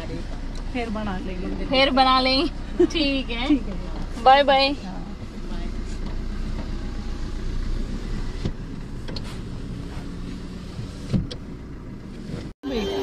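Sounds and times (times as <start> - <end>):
car engine running: 0.0 - 13.0
short thump: 10.7 - 11.4.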